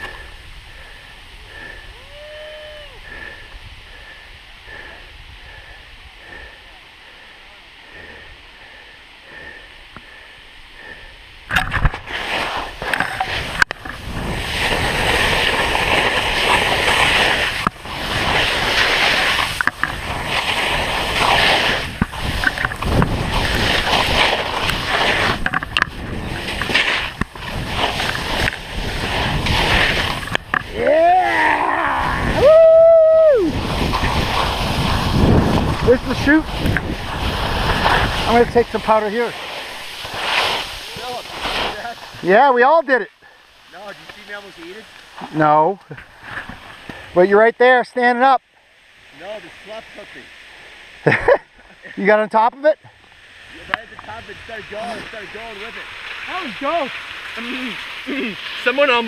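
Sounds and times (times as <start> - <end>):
skis scraping on snow: 0.0 - 48.3, 49.1 - 59.0
person whooping: 1.8 - 3.2, 30.6 - 33.7
wind rushing over microphone: 10.8 - 42.3.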